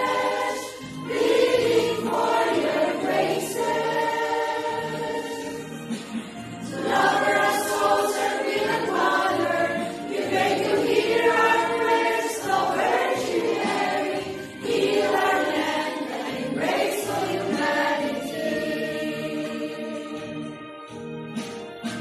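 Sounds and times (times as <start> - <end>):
women's choir singing a hymn: 0.0 - 20.5.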